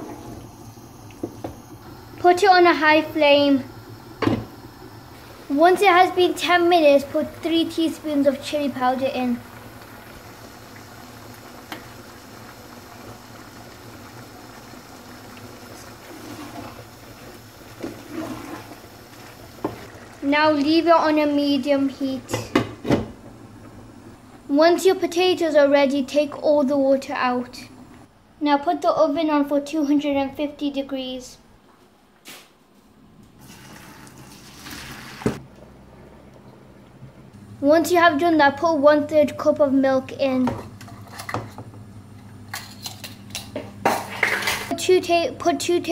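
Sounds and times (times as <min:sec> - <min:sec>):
meat sizzling in a pan: 0:01.9 - 0:20.8
wooden spatula scraping: 0:16.0 - 0:16.9, 0:17.8 - 0:18.8
water pouring into a metal colander: 0:33.4 - 0:35.2.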